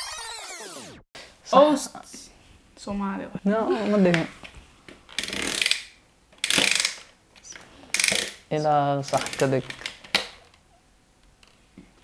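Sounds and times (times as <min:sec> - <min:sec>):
plastic ratchet clicking rapidly: 0:06.4 - 0:07.1, 0:07.9 - 0:08.4.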